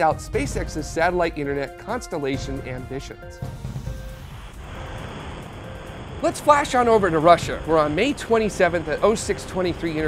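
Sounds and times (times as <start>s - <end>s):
steady rushing noise: 2.6s - 10.0s.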